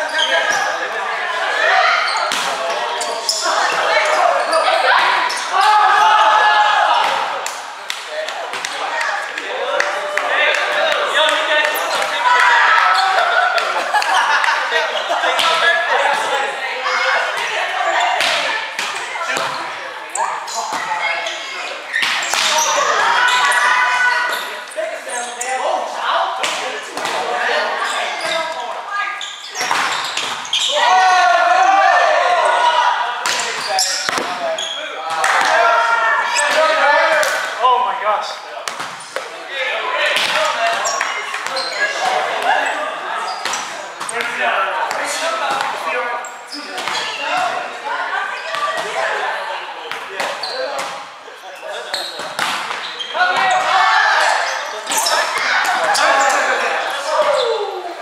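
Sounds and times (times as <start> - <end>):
sneakers squeaking on wooden floor: 0.0 - 0.9, 2.0 - 5.6, 19.3 - 25.6, 27.8 - 30.8, 33.3 - 35.2, 40.7 - 44.4, 50.3 - 56.6
players shouting: 0.0 - 38.4, 52.9 - 58.0
volleyball struck with slaps: 18.2 - 19.6, 33.2 - 34.4, 52.2 - 53.4
hands slapping volleyball: 33.2 - 34.4, 35.1 - 35.6, 36.4 - 37.5.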